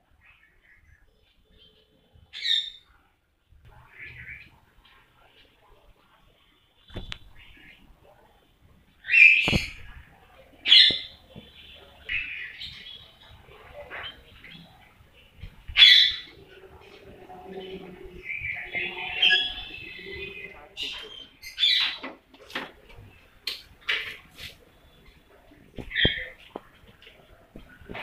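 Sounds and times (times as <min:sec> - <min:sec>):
birds calling loud high calls: 0:00.2 - 0:02.9, 0:09.0 - 0:10.0, 0:10.6 - 0:22.2, 0:23.9 - 0:26.5.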